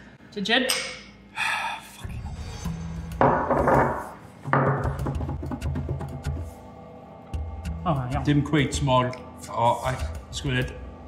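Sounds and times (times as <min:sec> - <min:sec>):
background music with bass: 0:02.0 - 0:11.0.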